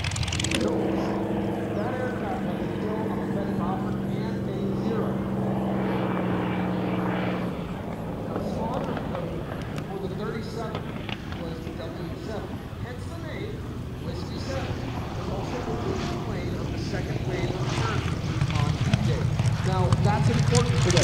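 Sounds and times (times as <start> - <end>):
propeller plane engine running: 0.0 - 21.0.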